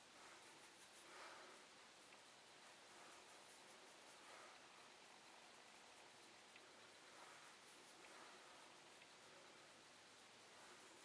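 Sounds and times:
soft brush swishes: 0.0s - 11.0s.

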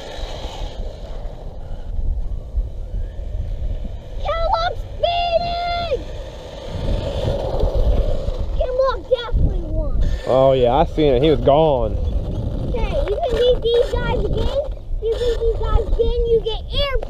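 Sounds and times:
wind buffeting microphone: 0.0s - 17.0s
child calling out: 4.2s - 6.1s.

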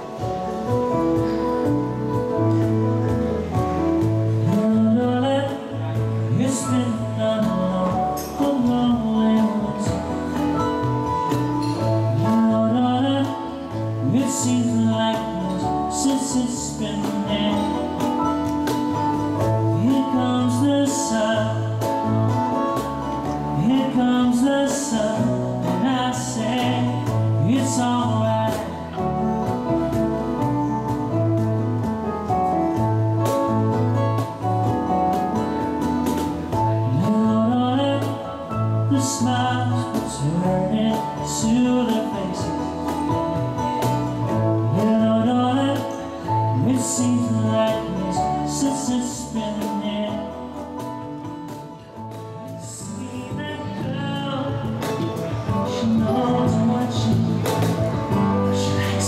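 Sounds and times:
bass line: 0.0s - 59.0s
electric guitar: 0.0s - 59.0s
keyboard: 0.0s - 59.0s
light percussion: 0.0s - 59.0s
strummed acoustic guitar: 0.0s - 59.0s
man singing: 3.9s - 31.2s, 36.4s - 59.0s.

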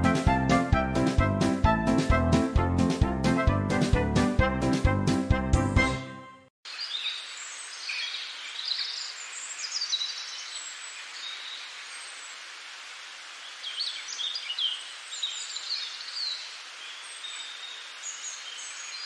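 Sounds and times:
burst of music: 0.0s - 6.3s
small birds chirping: 6.7s - 12.5s, 13.4s - 19.0s.

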